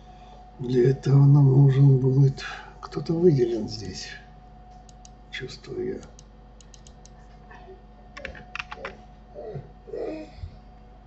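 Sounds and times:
keyboard keys clicking: 6.0 - 7.2, 8.2 - 9.0.

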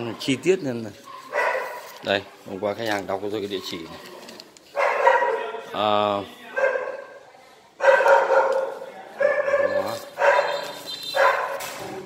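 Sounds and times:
dog barking: 1.0 - 2.0, 4.7 - 5.6, 6.6 - 7.2, 7.8 - 11.8.

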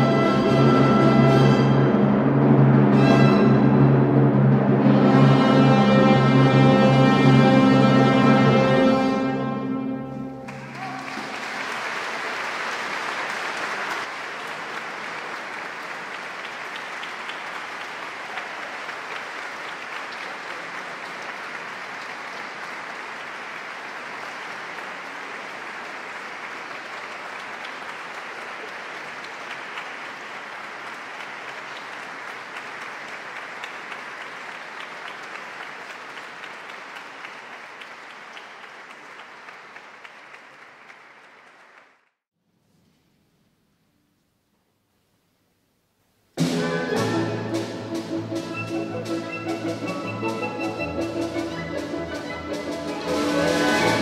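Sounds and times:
audience applauding: 10.4 - 42.2, 48.0 - 54.0.

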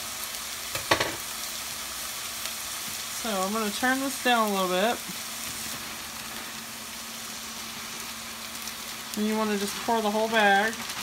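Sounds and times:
sausage sizzling in a wok: 0.0 - 11.0.

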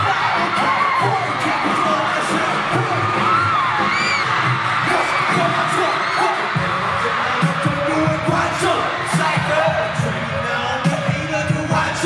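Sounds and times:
crowd screaming: 0.0 - 12.0
hip-hop music over speakers: 0.0 - 12.0.

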